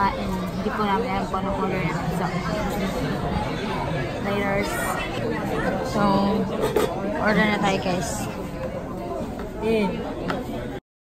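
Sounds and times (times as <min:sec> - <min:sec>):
indistinct chatter of voices: 0:00.0 - 0:10.8.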